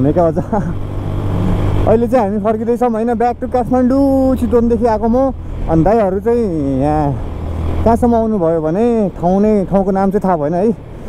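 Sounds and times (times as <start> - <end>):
person talking: 0.0 - 0.8, 1.8 - 10.8
motorcycle engine hum: 0.0 - 11.0.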